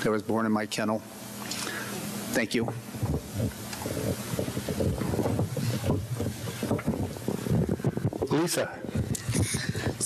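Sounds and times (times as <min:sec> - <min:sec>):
microphone rustling and rumbling: 0:02.6 - 0:10.0.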